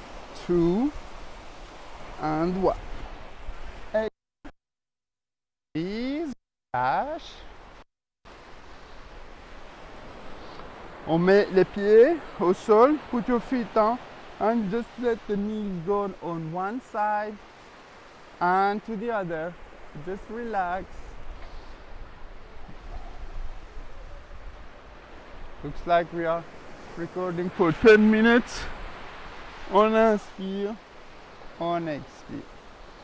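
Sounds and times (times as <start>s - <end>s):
surf breaking on beach: 8.3s - 33.0s.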